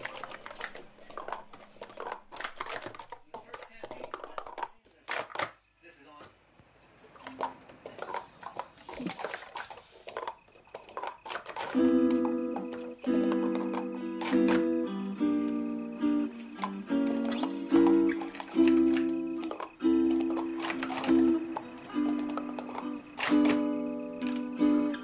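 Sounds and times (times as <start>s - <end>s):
plastic cups clattering: 0.0s - 5.6s, 7.2s - 25.0s
plucked-string music: 11.7s - 25.0s.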